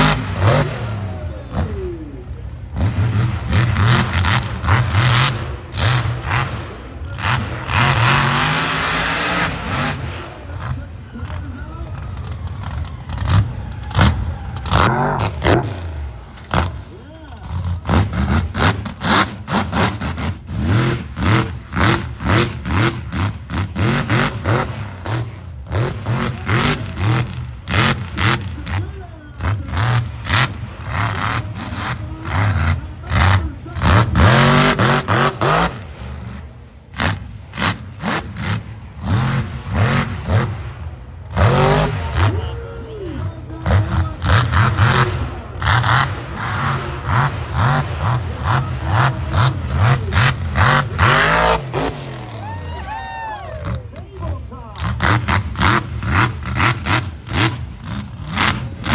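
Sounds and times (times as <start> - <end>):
truck engine revving hard: 0.0 - 58.9.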